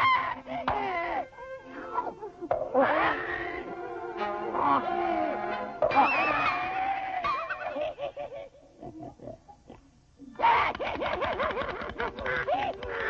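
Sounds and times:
cartoon pig-like squealing and grunting: 0.0 - 3.8, 4.5 - 7.7, 10.3 - 13.0.

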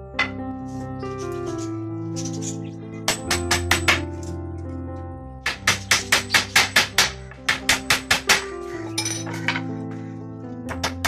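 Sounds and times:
hammer nailing wooden planks: 5.5 - 8.6.

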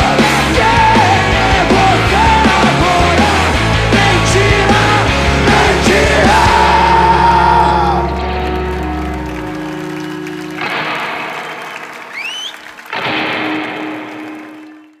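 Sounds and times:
crowd cheering and clapping: 0.0 - 15.0
rock band final chord ringing: 0.0 - 15.0
rising whistle: 11.5 - 12.9.

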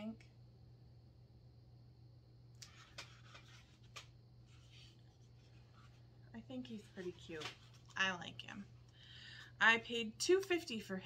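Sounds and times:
low steady hum: 0.0 - 11.0
rustling and scraping of figurine: 2.6 - 8.2.

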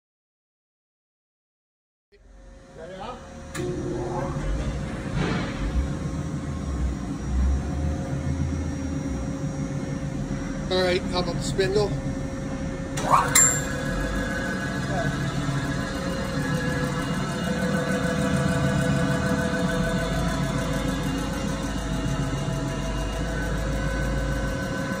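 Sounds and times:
grinder machine hum: 2.2 - 25.0
steady whining tones: 2.2 - 25.0.

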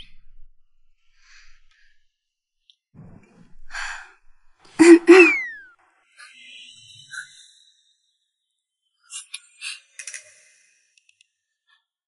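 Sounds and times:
person sighing: 4.8 - 5.5
person voice burst with laugh: 4.8 - 5.6.

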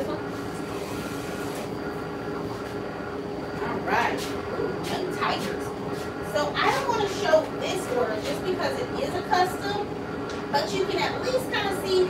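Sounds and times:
printing machine humming: 0.0 - 12.0.

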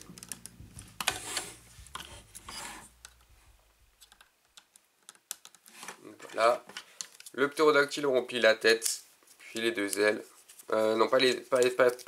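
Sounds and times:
plastic toy parts clicking: 4.0 - 5.9, 6.8 - 7.4.

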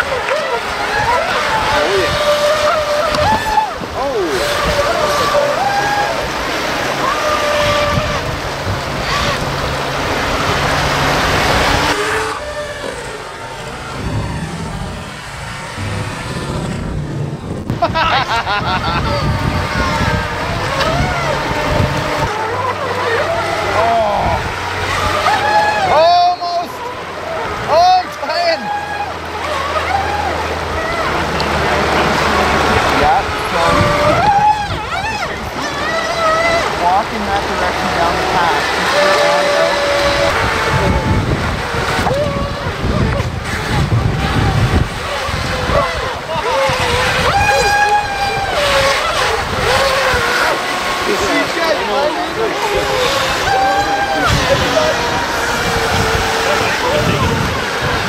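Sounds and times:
electric motors whining: 0.0 - 58.0
water rushing over rocks: 0.0 - 58.0.

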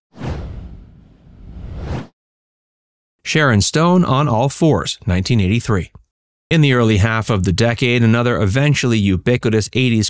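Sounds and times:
whoosh sound effect: 0.2 - 2.1.

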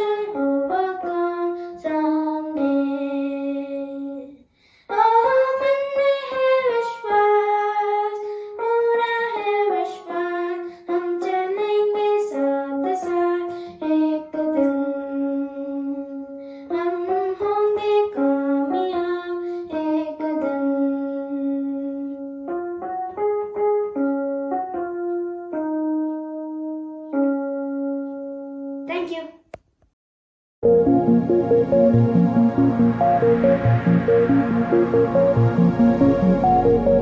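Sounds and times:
electronic keyboard: 0.0 - 4.3, 4.9 - 29.1, 30.6 - 37.0
boy singing: 0.0 - 22.1.

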